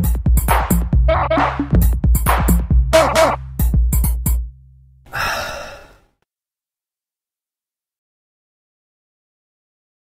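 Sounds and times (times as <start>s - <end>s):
person sighing: 5.1s - 6.2s.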